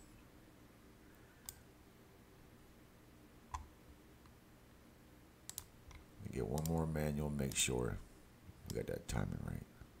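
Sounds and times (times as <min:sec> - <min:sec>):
computer mouse clicks: 0:01.4 - 0:01.6, 0:03.5 - 0:04.4, 0:05.5 - 0:07.7.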